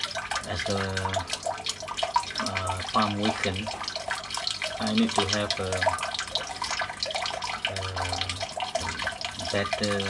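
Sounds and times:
water splashing into tank: 0.0s - 10.0s.

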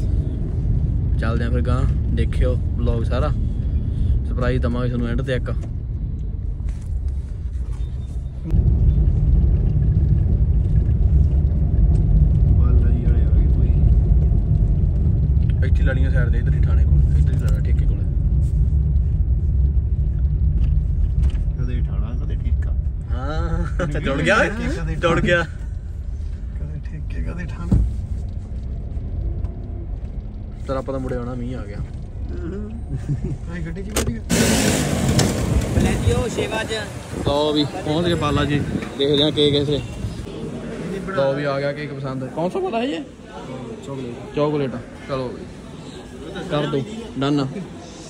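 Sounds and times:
car engine and tyres rumbling: 0.0s - 48.0s.

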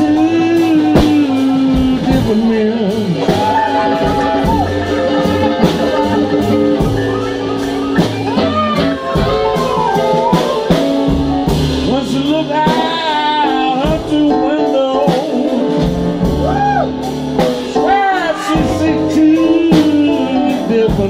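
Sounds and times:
drums: 0.0s - 21.0s
electric guitar: 0.0s - 21.0s
upright double bass: 0.0s - 21.0s
amplified harmonica playing: 3.4s - 10.7s.

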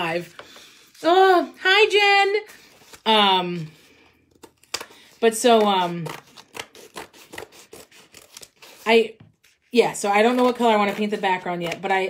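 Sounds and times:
scissors snipping canvas: 4.4s - 8.5s.

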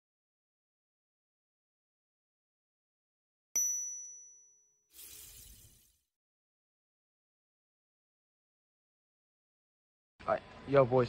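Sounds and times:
ringing chime-like tone: 3.6s - 5.9s
crashing burst like shattering glass: 5.0s - 6.0s.

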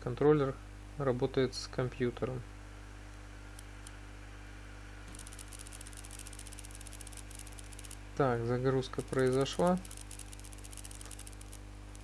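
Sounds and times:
low electrical hum: 0.0s - 12.0s
faint high-pitched crackle: 5.1s - 8.0s, 8.9s - 12.0s.

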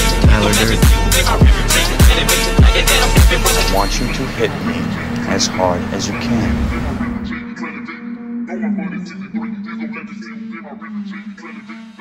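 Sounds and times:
music beat: 0.0s - 6.1s
man speaking: 0.2s - 1.0s, 3.5s - 6.8s
car noise: 1.2s - 7.4s.

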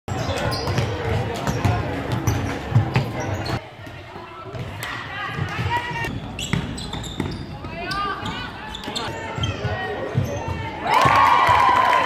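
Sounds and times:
basketballs bouncing on floor: 0.1s - 11.7s
players' voices and chatter: 0.1s - 12.0s.

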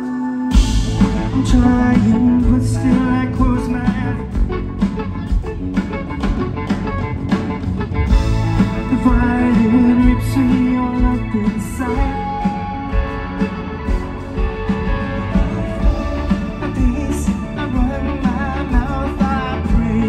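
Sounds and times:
man singing lead vocal: 0.0s - 4.5s, 8.6s - 12.9s, 15.3s - 20.0s
live rock band playing: 0.0s - 20.0s.

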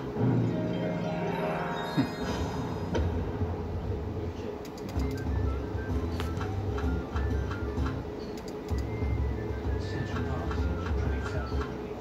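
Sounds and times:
low rumbling hum: 0.0s - 11.6s.

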